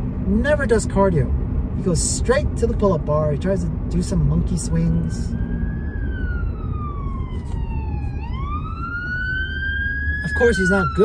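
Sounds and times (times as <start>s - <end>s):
low road rumble: 0.0s - 11.0s
emergency vehicle siren wailing: 4.5s - 11.0s.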